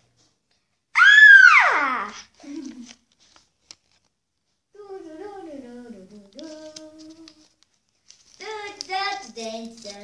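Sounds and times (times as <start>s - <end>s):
girl singing long held notes: 4.8s - 7.4s.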